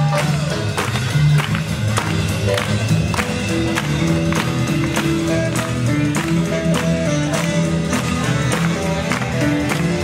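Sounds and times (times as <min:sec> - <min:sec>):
double bass: 0:00.0 - 0:10.0
drums: 0:00.0 - 0:10.0
live swing jazz band: 0:00.0 - 0:10.0.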